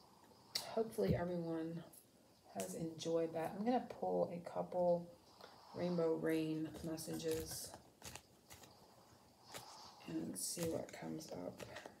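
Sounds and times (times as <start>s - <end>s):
card deck being shuffled: 6.8s - 8.8s.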